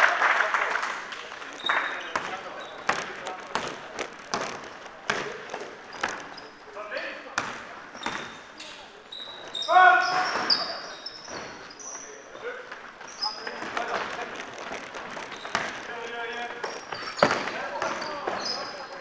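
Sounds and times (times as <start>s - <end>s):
sneakers squeaking: 1.4s - 19.0s
basketball bouncing on floor: 2.1s - 6.4s, 7.4s - 8.4s, 13.6s - 15.9s, 16.6s - 18.4s.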